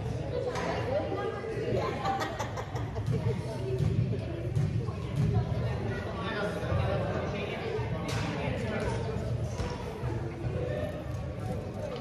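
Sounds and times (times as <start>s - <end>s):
echoing crowd of voices talking: 0.0s - 12.0s.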